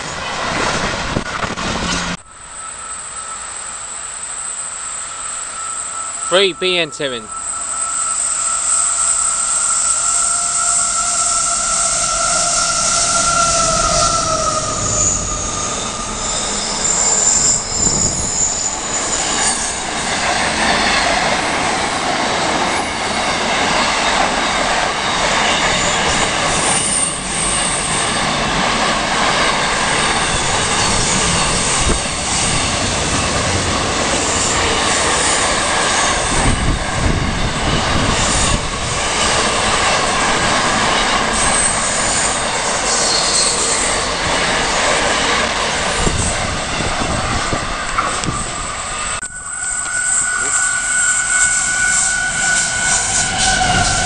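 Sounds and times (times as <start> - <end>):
freight train wheels rumbling on rail: 0.0 - 54.0
high wheel squeals: 1.2 - 54.0.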